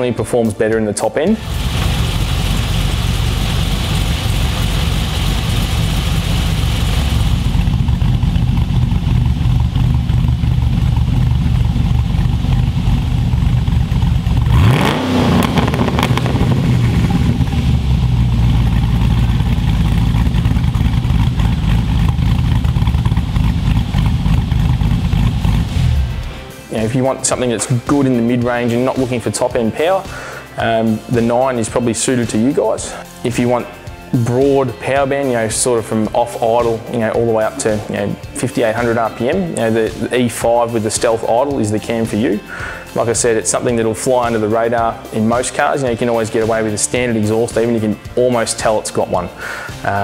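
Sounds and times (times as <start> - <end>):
lumpy engine idle: 1.4 - 26.4
engine revving: 1.4 - 26.7.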